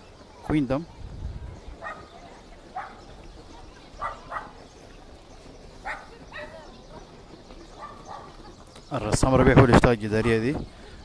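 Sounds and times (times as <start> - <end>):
dog barking faintly: 1.5 - 3.1, 4.0 - 4.6, 5.8 - 6.5, 7.8 - 8.4.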